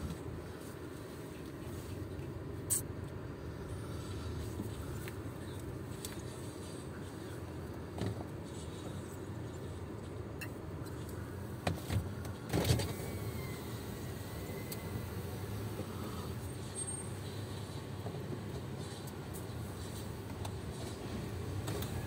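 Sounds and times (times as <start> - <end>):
car engine rumble from inside: 0.0 - 22.0.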